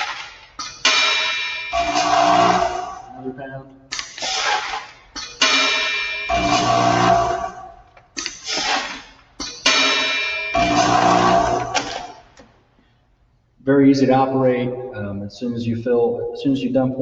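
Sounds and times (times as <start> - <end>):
metallic ringing: 0.6 - 3.3, 5.2 - 7.8, 9.4 - 12.3.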